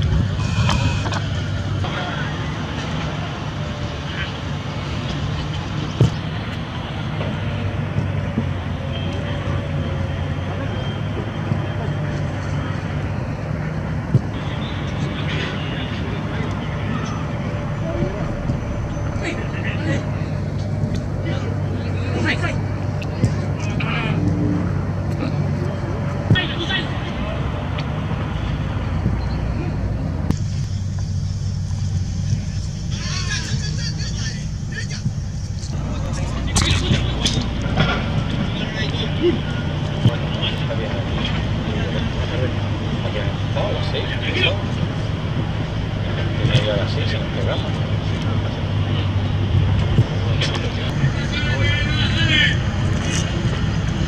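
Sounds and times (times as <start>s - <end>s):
steady low rumble: 0.0s - 8.9s, 11.2s - 54.0s
players' faint calls: 0.0s - 54.0s.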